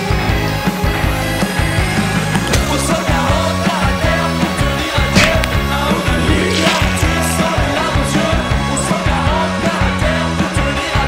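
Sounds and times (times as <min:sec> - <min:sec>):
bass guitar: 0:00.0 - 0:11.0
electric guitar: 0:00.0 - 0:11.0
drums keeping a steady beat: 0:04.6 - 0:09.6.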